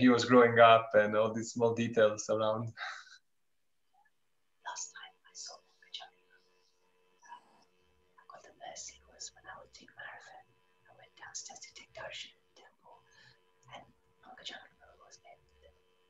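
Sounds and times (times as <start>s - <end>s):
faint steady hum: 0.0s - 16.0s
soft whispered speech: 4.6s - 15.9s.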